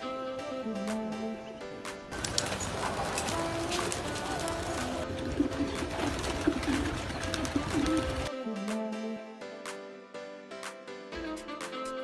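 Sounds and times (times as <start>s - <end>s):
pigeon wing claps: 2.0s - 8.3s
pigeons cooing: 2.2s - 8.3s.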